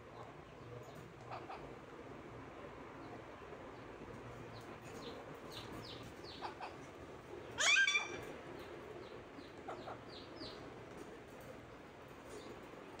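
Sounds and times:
parakeet squawk: 7.6s - 8.3s.

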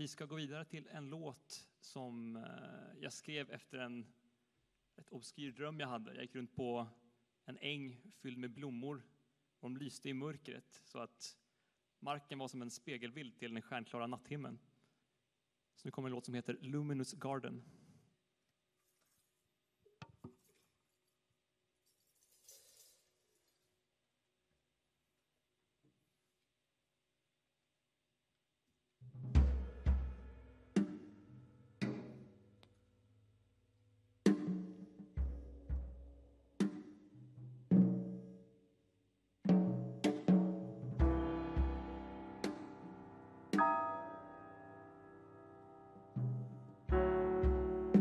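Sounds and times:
soft rustle: 18.7s - 19.6s, 21.8s - 23.8s
slow jazz quartet instrumental: 40.7s - 48.0s.

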